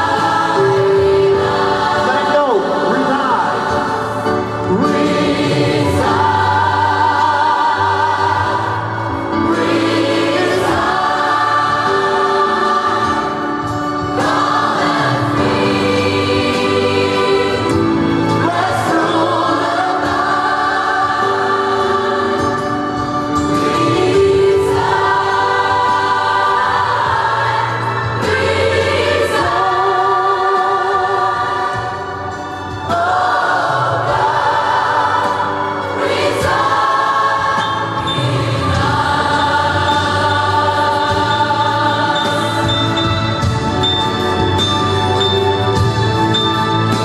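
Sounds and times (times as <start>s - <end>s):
gospel choir singing: 0.0s - 47.0s.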